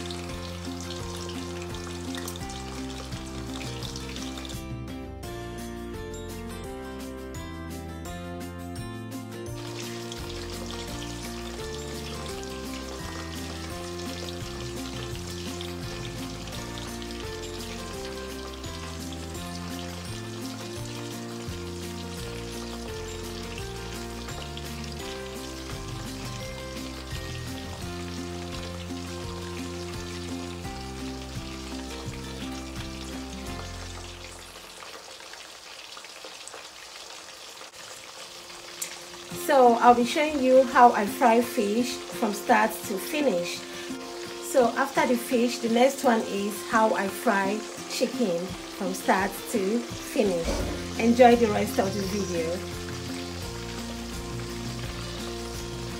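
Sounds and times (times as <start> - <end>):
fish frying in hot oil: 0.0 - 6.0, 9.2 - 55.9
background music: 0.0 - 35.2, 38.2 - 55.9.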